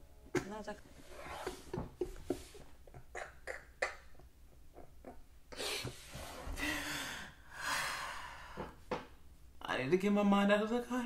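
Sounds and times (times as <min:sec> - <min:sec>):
man laughing breathlessly: 0:01.2 - 0:03.5.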